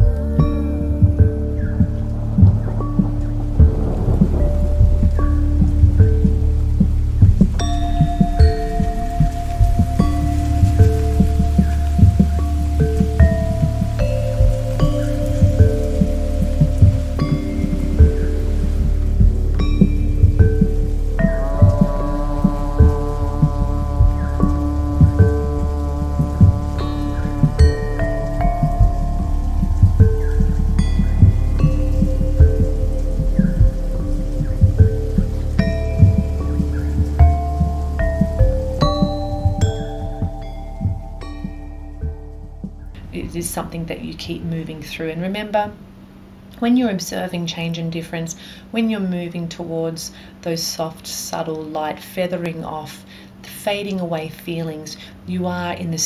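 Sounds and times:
thunder: 0.0s - 42.2s
ambient synth music: 0.0s - 46.2s
rain patter: 0.0s - 56.0s.

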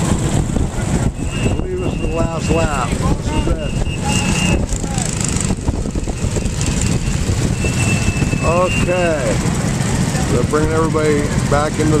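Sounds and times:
go-kart engines running: 0.0s - 12.0s
wind buffeting microphone: 0.0s - 12.0s.

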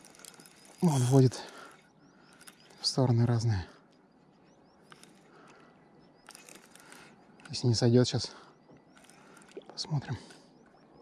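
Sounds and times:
soft high chirps: 0.0s - 11.0s.

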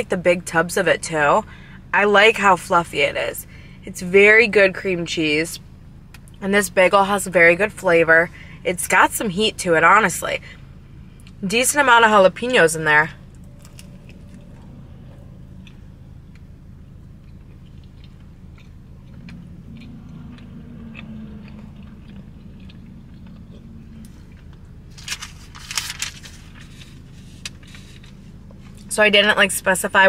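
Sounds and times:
steady low hum: 0.0s - 30.0s
chewing with mouth closed: 13.2s - 24.9s
wet mouth clicks: 17.2s - 24.4s
paper wrapper rustling: 24.9s - 28.2s.

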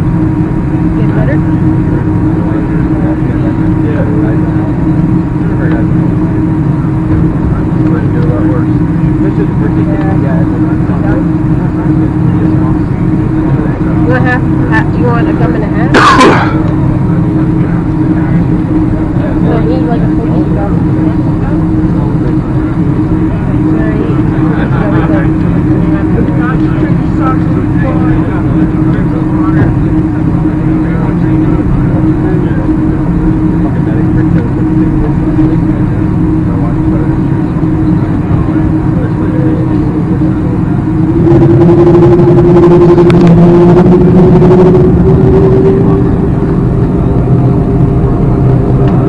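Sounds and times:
jet engines humming in cabin: 0.0s - 49.0s.

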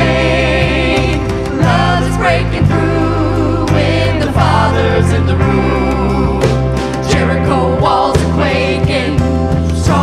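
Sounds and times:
bass notes: 0.0s - 10.0s
live band playing: 0.0s - 10.0s
voices singing: 0.0s - 10.0s.

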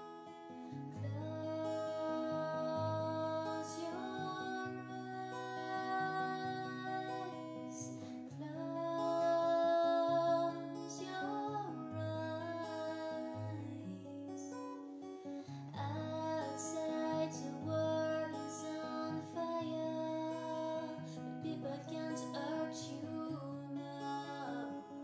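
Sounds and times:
acoustic guitar chord progression: 0.0s - 25.0s
woman singing softly: 0.9s - 14.9s, 15.6s - 25.0s.

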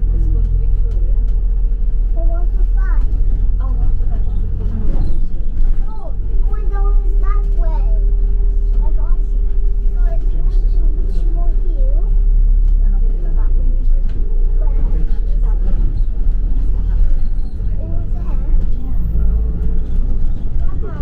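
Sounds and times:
bus engine rumble: 0.0s - 21.0s
passengers talking indistinctly: 0.0s - 21.0s.

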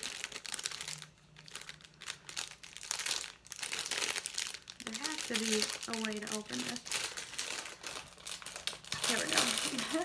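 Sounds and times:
packaging rustling and crinkling: 0.0s - 10.0s.

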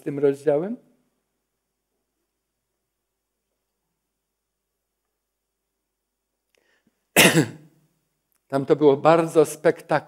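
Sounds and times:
man coughing: 7.2s - 7.7s.

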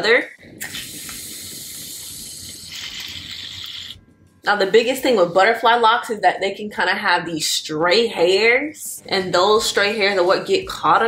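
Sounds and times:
aerosol can hissing: 0.6s - 4.0s.

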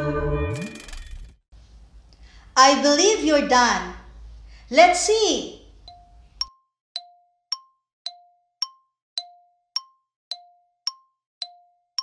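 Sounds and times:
countdown timer ticking: 5.8s - 12.0s.

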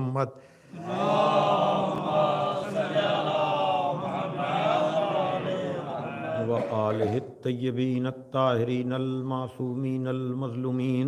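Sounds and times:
congregation chanting in unison: 0.6s - 7.5s.

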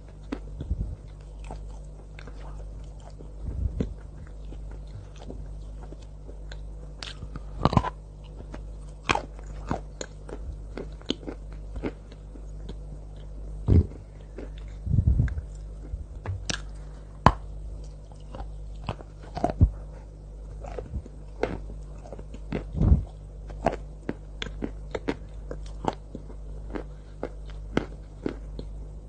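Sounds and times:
crunchy chewing of chalk: 0.0s - 29.0s.

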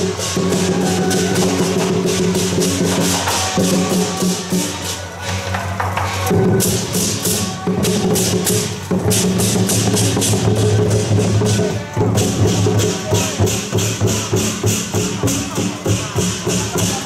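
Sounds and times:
barrel drums: 0.0s - 17.0s
cymbals struck: 0.0s - 17.0s.

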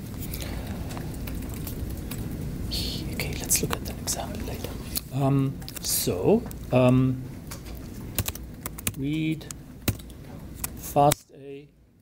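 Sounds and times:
low hum: 0.0s - 11.0s
soft whispering: 2.6s - 6.1s.

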